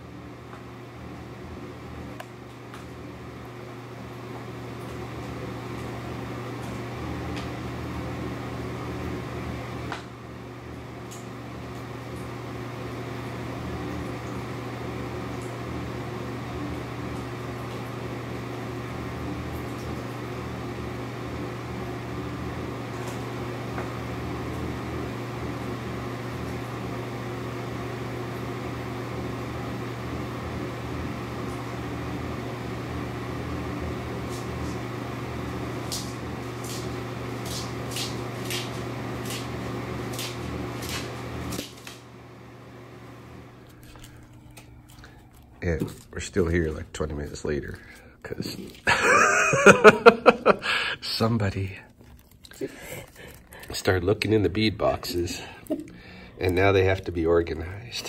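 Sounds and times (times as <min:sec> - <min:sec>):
low machine hum: 0:00.0 - 0:58.0.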